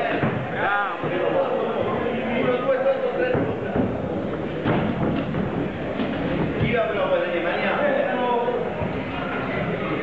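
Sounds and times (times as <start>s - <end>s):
voices in echoing hall: 0.0s - 10.0s.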